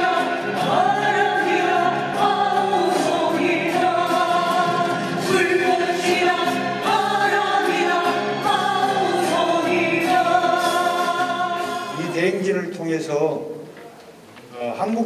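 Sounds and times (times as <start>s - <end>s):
acoustic guitar: 0.0s - 12.7s.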